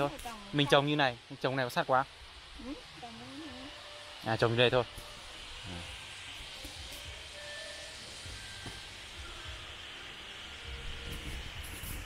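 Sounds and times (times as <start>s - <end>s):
forest background hiss: 0.0s - 12.0s.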